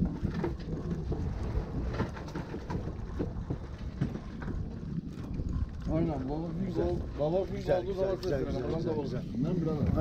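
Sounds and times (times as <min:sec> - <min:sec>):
water lapping against boat: 0:00.0 - 0:10.0
wind rumbling on microphone: 0:00.0 - 0:10.0.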